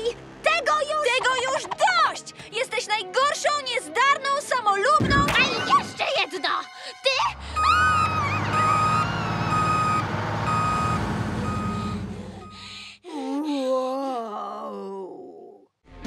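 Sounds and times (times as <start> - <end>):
low engine rumble: 7.4 - 12.8
high electronic reversing beep: 7.5 - 12.6.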